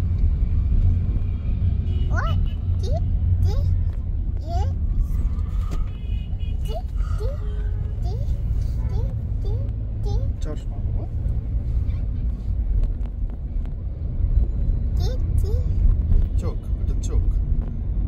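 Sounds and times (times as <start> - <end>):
car interior rumble: 0.0 - 18.0
toddler vocalizing: 6.6 - 10.4.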